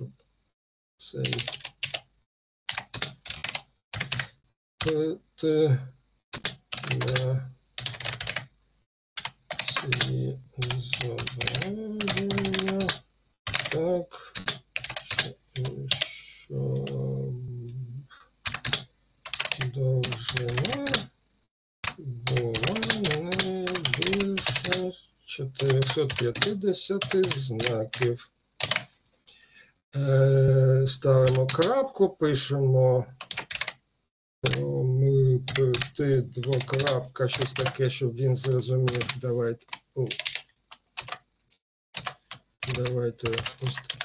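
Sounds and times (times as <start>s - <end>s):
person speaking: 1.0s - 1.7s, 4.8s - 6.0s, 6.8s - 8.1s, 9.6s - 21.1s, 21.9s - 28.3s, 30.0s - 33.4s, 34.4s - 40.4s, 42.6s - 44.0s
computer keyboard typing: 1.2s - 2.1s, 2.7s - 5.1s, 6.4s - 8.5s, 9.2s - 17.1s, 18.4s - 21.1s, 21.8s - 24.9s, 25.5s - 28.9s, 31.2s - 31.8s, 33.2s - 33.8s, 34.4s - 34.7s, 35.5s - 41.2s, 42.0s - 44.0s.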